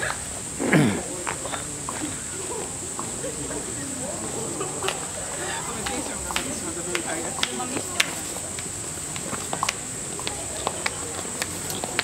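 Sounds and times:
murmured voices: 0.0s - 12.0s
night insects droning: 0.0s - 12.0s.

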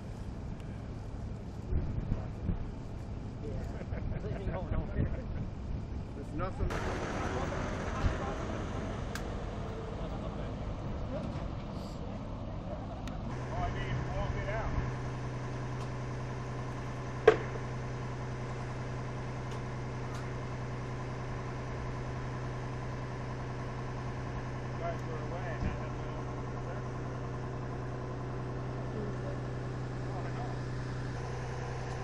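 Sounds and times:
fire truck engine idling: 0.0s - 32.0s
faint voices: 6.2s - 14.9s
sharp knock: 17.2s - 17.6s.

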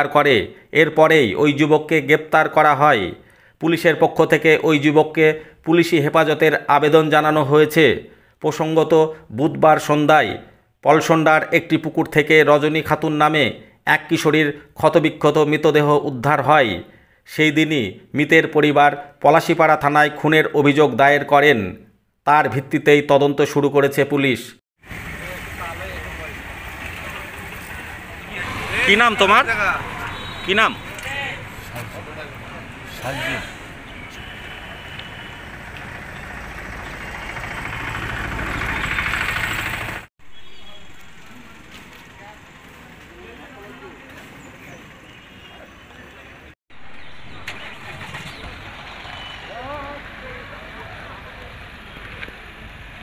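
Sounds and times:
vehicle engine running: 24.8s - 44.2s, 46.8s - 53.0s
low street rumble: 24.8s - 53.0s
faint voices: 49.4s - 52.4s.

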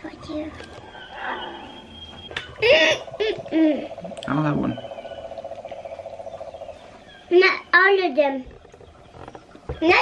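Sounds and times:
rapidly pulsing animal trill: 2.5s - 7.7s.

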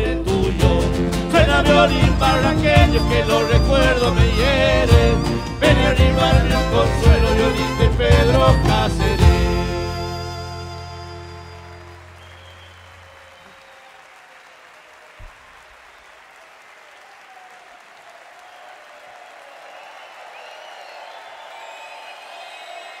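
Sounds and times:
audience cheering: 1.4s - 23.0s
audience applause: 10.8s - 23.0s.

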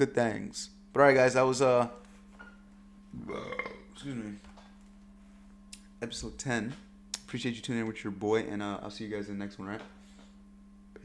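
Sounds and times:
man burping: 3.1s - 4.0s.

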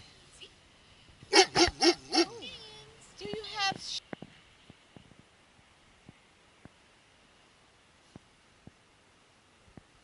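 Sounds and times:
dog whining: 1.3s - 2.3s
dog woofing: 1.3s - 2.4s.

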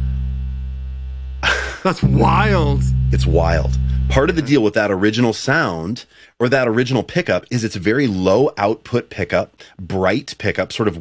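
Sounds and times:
low mains buzz: 0.0s - 4.6s
bass guitar note: 0.0s - 4.8s.

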